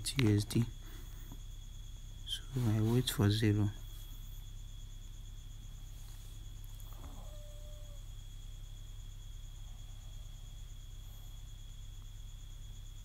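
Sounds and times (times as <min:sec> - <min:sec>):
faint high whine: 0:00.0 - 0:13.0
low electrical hum: 0:00.0 - 0:13.0.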